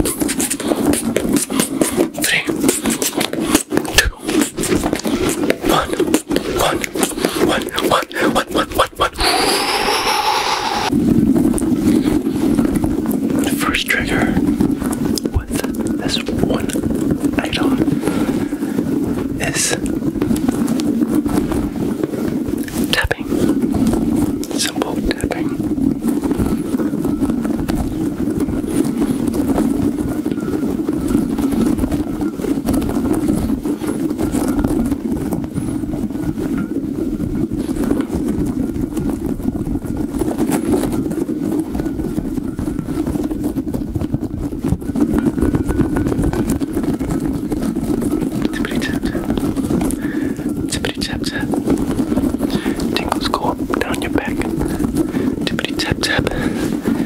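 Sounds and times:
rubbery ball rubbed and squeezed: 0.0s - 36.4s, 37.2s - 57.0s.

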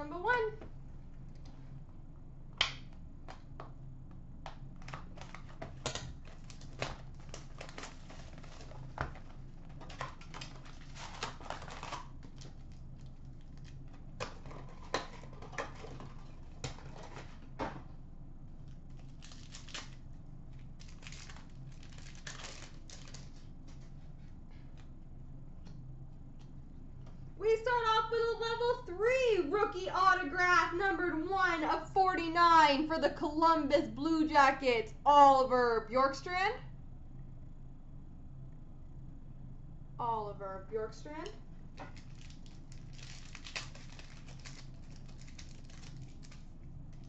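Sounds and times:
faint low hum: 0.0s - 47.0s
paper and plastic rustling: 4.8s - 12.8s, 13.4s - 17.8s, 41.9s - 46.5s.

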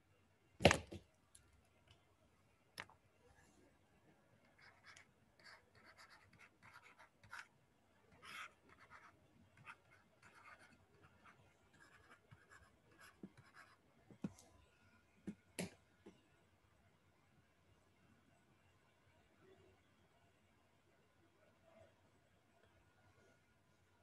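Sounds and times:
pen scratching on paper: 4.5s - 7.5s, 8.2s - 13.8s.

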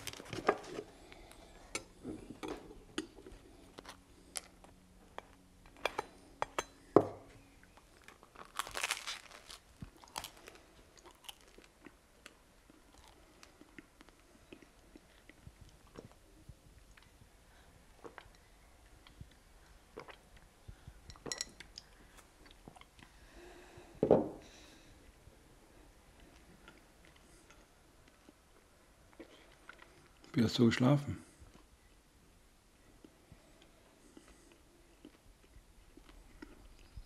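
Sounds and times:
chewing crunches: 7.7s - 16.2s
person biting crusty bread: 8.0s - 11.8s.

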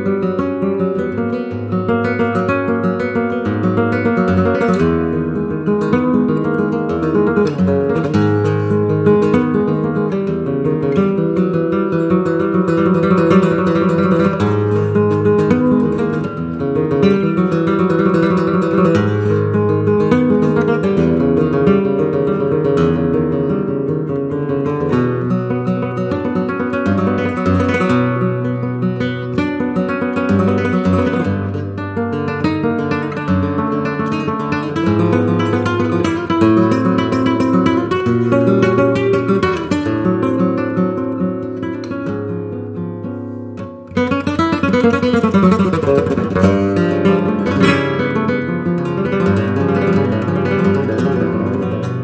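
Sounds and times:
flamenco guitar playing: 0.0s - 52.0s.

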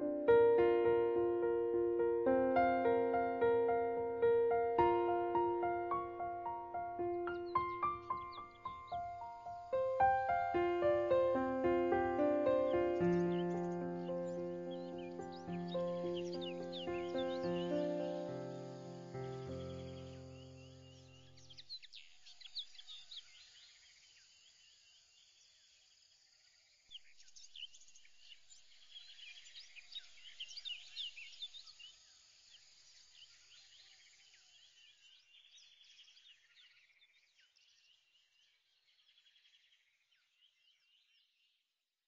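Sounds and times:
music track: 0.0s - 20.4s
birds chirping and trilling: 0.0s - 23.8s, 26.9s - 41.2s.

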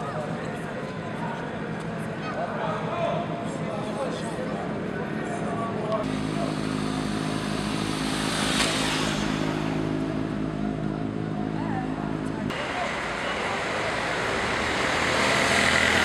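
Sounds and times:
vehicle engine running: 6.0s - 16.0s
vehicle passing: 6.0s - 16.0s.

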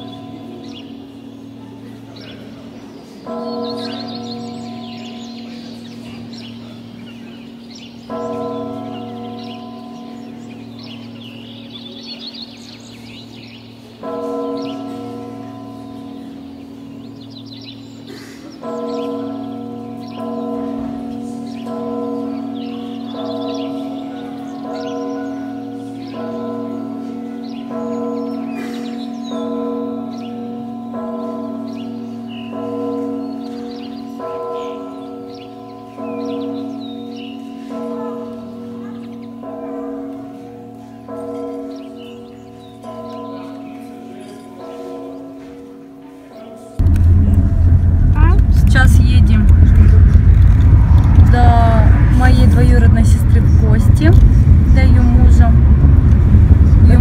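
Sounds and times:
church bells ringing: 0.0s - 57.0s
hum of large bell: 0.0s - 57.0s.

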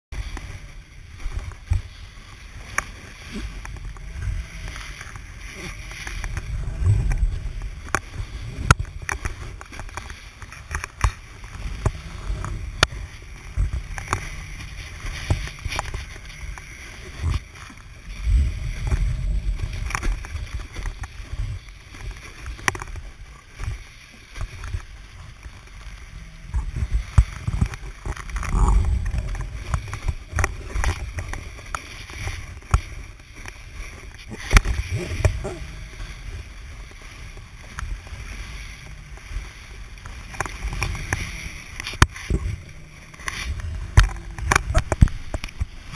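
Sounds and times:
rushing water and spray: 0.1s - 45.9s
wind buffeting: 3.1s - 22.0s, 26.3s - 32.7s.

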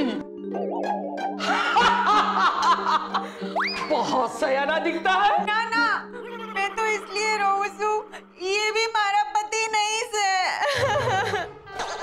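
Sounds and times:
background music with held tones: 0.0s - 9.6s
woman laughing: 5.1s - 8.0s, 10.5s - 12.0s.

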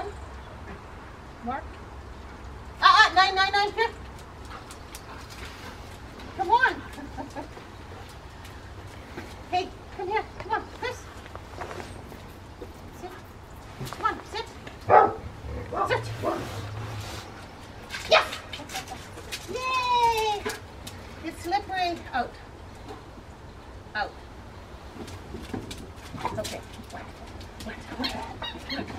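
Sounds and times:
dog barking and whining: 14.9s - 16.6s.

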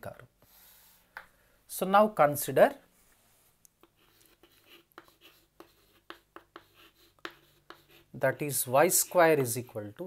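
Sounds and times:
chalk on chalkboard: 3.8s - 9.8s.

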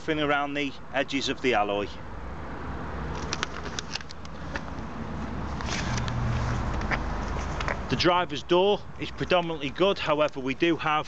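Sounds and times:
vehicle engine humming: 2.2s - 9.4s.

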